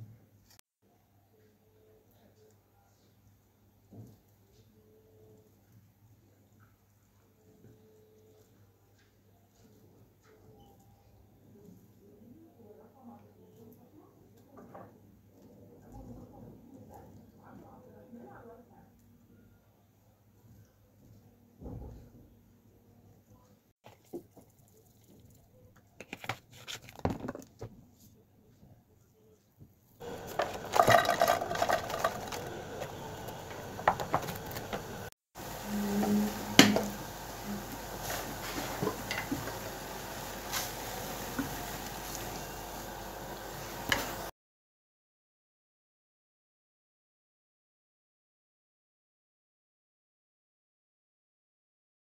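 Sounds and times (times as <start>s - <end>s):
spatula clinking and scraping: 30.0s - 34.9s
peppers sizzling in frying pan: 30.0s - 44.3s.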